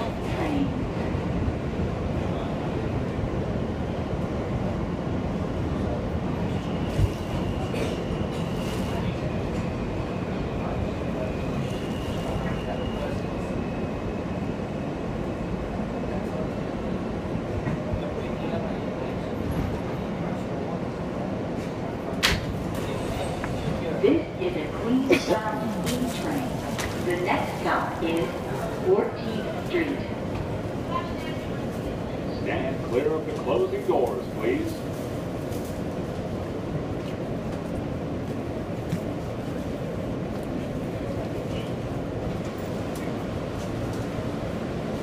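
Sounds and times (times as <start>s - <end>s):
subway wheels rumbling: 0.0s - 45.0s.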